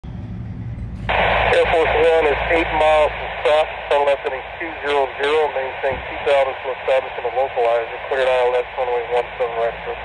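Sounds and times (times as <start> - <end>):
low hum: 0.0 - 10.0
radio channel hiss: 1.1 - 10.0
controller's voice over radio: 1.5 - 10.0.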